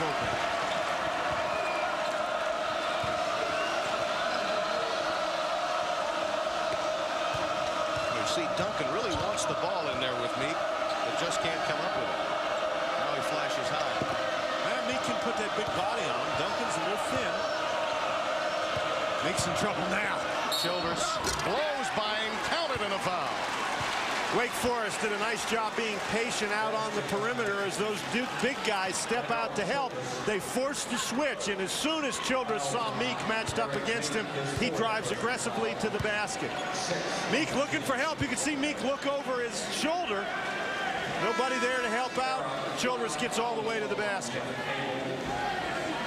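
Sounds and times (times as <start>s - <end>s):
arena crowd noise: 0.0s - 46.0s.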